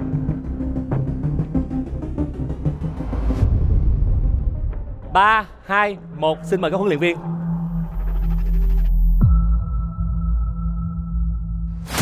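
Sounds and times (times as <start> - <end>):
suspense music low drone: 0.0 - 5.1, 6.0 - 12.0.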